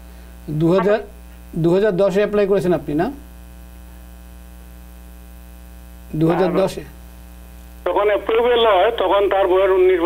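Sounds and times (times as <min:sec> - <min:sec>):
electrical mains hum: 0:00.0 - 0:10.0
caller's voice over telephone: 0:07.8 - 0:10.0.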